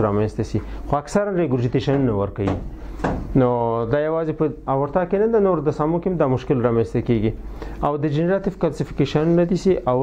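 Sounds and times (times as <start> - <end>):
man lecturing: 0.0 - 10.0.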